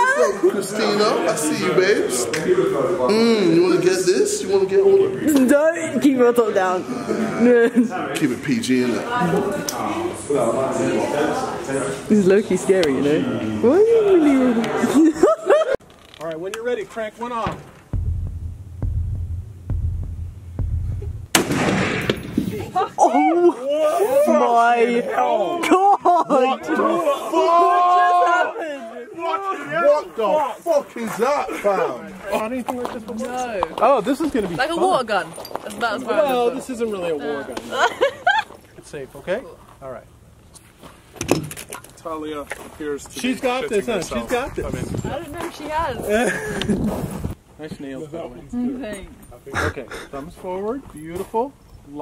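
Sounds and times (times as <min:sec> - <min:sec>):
slow low thuds: 0:17.5 - 0:22.6
low hum: 0:17.7 - 0:22.4
rifle shot: 0:18.0 - 0:22.6.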